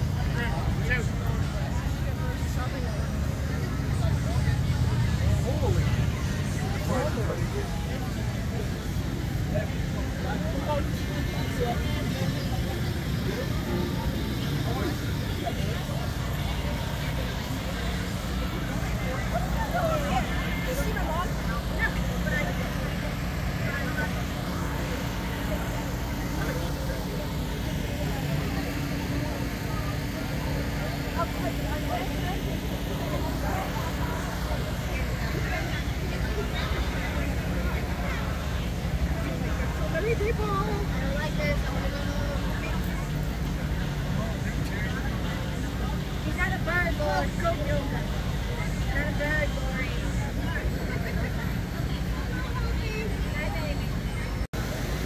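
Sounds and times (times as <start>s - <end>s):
engine hum: 0.0s - 55.0s
indistinct crowd chatter: 0.0s - 55.0s.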